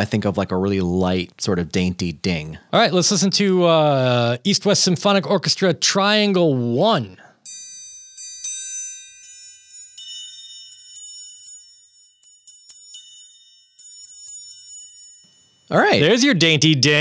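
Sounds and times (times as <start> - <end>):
triangle ringing: 7.4 - 16.4.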